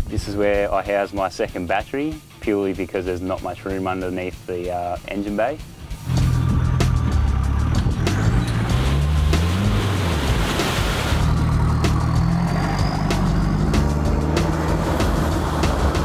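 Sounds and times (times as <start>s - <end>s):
truck engine revving: 5.9s - 16.0s
tyres spraying mud: 6.0s - 16.0s.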